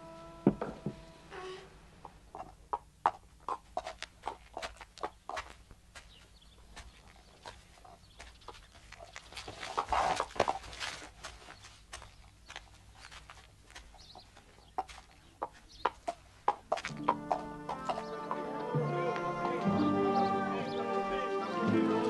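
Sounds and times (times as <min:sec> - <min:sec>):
farm animals: 0:00.0 - 0:22.0
donkey hooves on stony ground: 0:02.4 - 0:19.6
music: 0:16.9 - 0:22.0.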